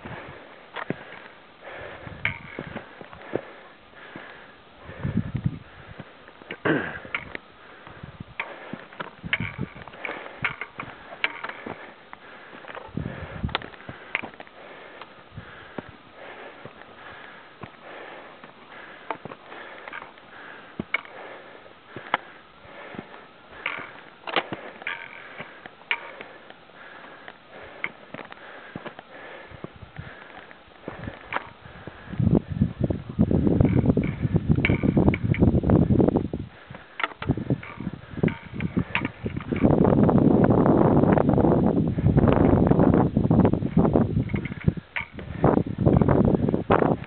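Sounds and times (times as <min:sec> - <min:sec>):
boots clicking on loose stones: 0:00.0 - 0:04.5, 0:05.4 - 0:32.2, 0:36.6 - 0:39.9, 0:43.6 - 0:47.0
person breathing through nose: 0:00.0 - 0:09.0, 0:09.9 - 0:32.6.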